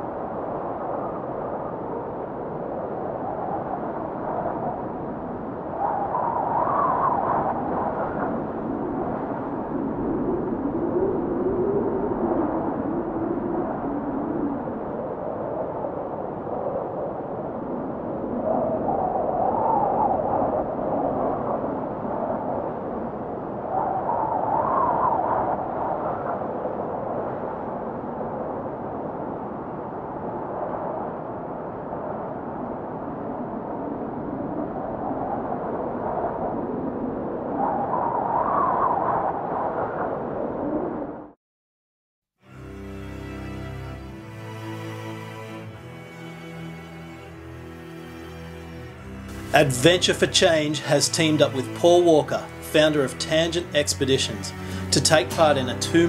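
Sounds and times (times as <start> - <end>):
wind blowing in gusts: 0.0 - 41.4.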